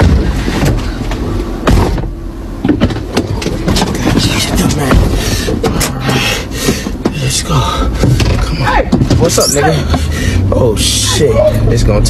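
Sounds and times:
car engine hum: 0:00.0 - 0:12.0.

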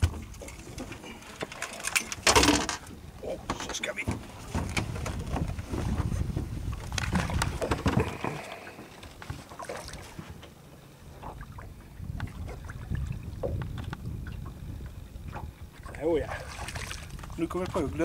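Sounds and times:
knocks and clatter in boat: 0:00.0 - 0:18.0
water against hull: 0:00.0 - 0:18.0
wind on microphone: 0:04.4 - 0:08.5, 0:11.2 - 0:18.0.

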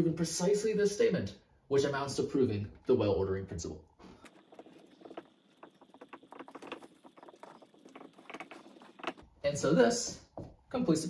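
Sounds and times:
marker writing on whiteboard: 0:04.2 - 0:09.2.

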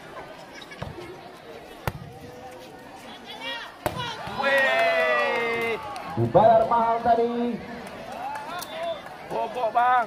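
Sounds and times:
crowd shouting: 0:03.3 - 0:06.3
volleyball hit hard: 0:03.8 - 0:04.4.

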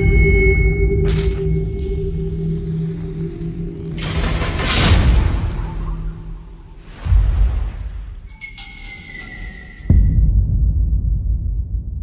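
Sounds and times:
thin high ringing tone: 0:00.0 - 0:04.5, 0:08.3 - 0:10.2
low sustained drones: 0:00.0 - 0:06.8.

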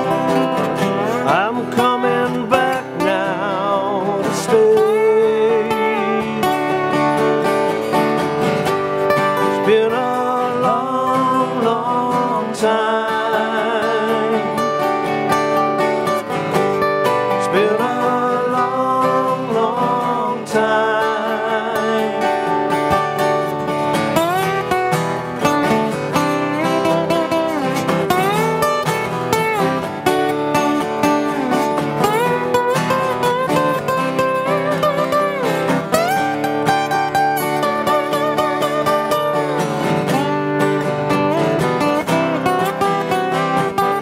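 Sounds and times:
acoustic guitar strumming chords: 0:00.0 - 0:44.0
guitar lead with bending notes: 0:00.0 - 0:44.0.

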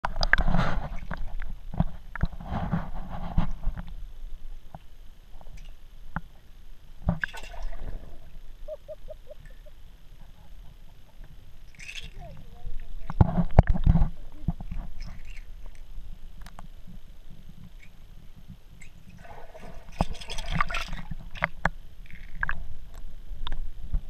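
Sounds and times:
water sloshing and splashing: 0:07.0 - 0:15.9, 0:18.8 - 0:22.7.

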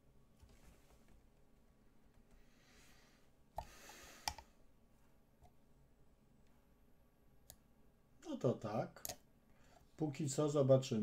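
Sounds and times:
computer mouse clicks: 0:03.6 - 0:04.5.

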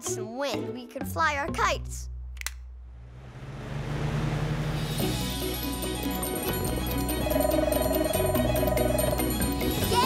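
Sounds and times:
fan switch click: 0:02.4 - 0:02.6.

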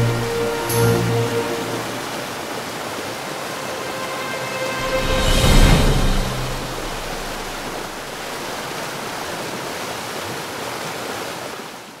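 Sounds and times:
waterfall roaring: 0:00.0 - 0:11.8.

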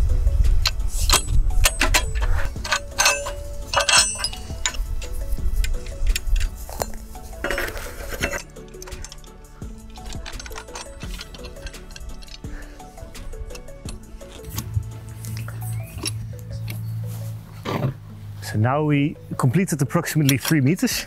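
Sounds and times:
metal rods clanking: 0:00.6 - 0:16.9, 0:19.4 - 0:21.0.

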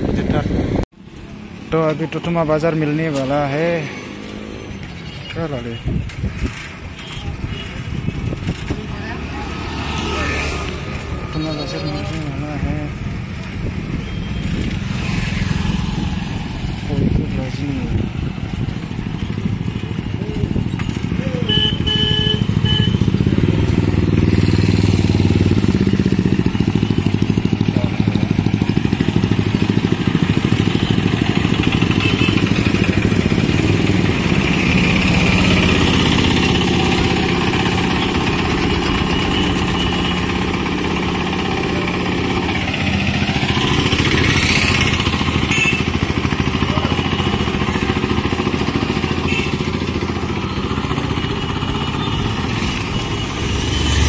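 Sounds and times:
motorcycle and rickshaw engines: 0:00.0 - 0:54.0.

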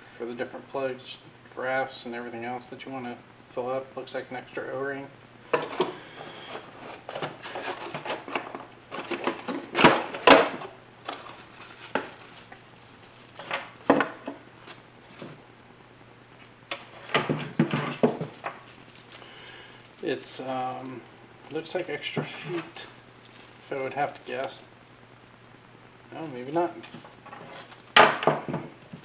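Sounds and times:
cardboard and plastic rustling: 0:05.5 - 0:15.4, 0:16.7 - 0:25.2, 0:26.2 - 0:29.0
plastic parts clattering: 0:05.5 - 0:15.4, 0:16.7 - 0:24.6.

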